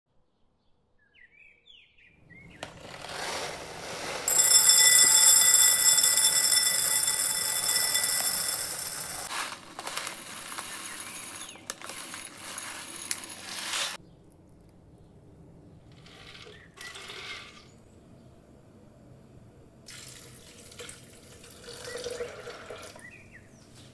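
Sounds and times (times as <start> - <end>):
beans pouring into ceramic bowl: 2.8 - 14.0
bowl ringing: 4.3 - 9.3.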